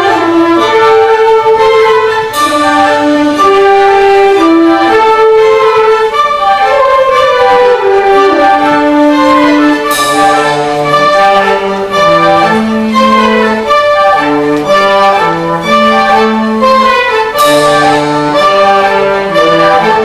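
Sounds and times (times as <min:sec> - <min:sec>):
concert band playing: 0:00.0 - 0:20.0
cymbal crash: 0:02.2 - 0:04.3, 0:09.8 - 0:13.0.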